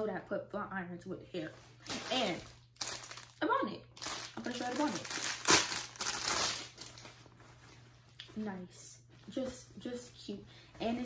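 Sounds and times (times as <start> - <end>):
plastic packaging crinkling: 1.8 - 7.4.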